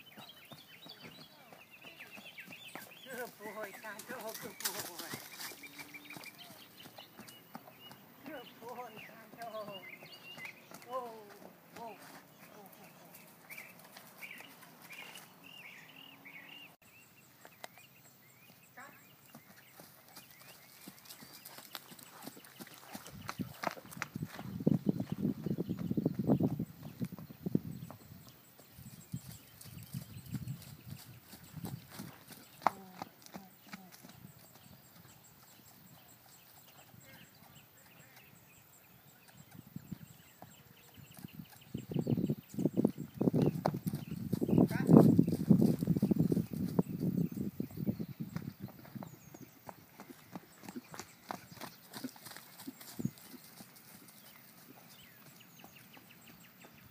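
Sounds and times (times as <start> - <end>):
horse hooves trotting on dirt: 0.0 - 16.1, 17.2 - 56.9.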